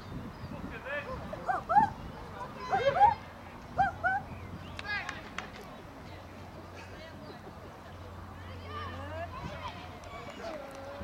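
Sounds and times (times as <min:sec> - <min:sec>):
low chatter: 0:00.4 - 0:11.0
high-pitched yelping calls: 0:01.4 - 0:02.0, 0:03.8 - 0:04.3.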